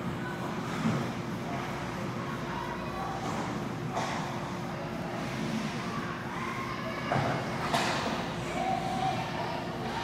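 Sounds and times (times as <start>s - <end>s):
faint constant hum: 0.0s - 10.0s
skating and hall noise: 0.0s - 10.0s.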